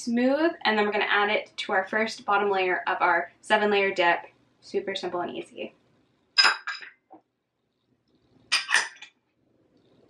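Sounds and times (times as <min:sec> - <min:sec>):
kitchenware clattering: 0:06.4 - 0:07.0, 0:08.5 - 0:09.1.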